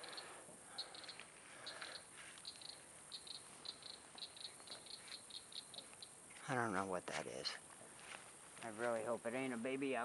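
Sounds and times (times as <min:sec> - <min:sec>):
animal high clicking calls: 0:00.0 - 0:06.2.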